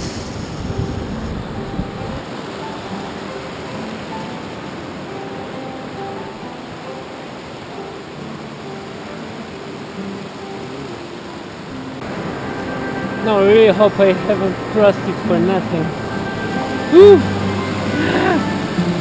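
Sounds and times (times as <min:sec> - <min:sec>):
rushing mountain stream: 0:00.0 - 0:19.0
soft background music: 0:00.8 - 0:19.0.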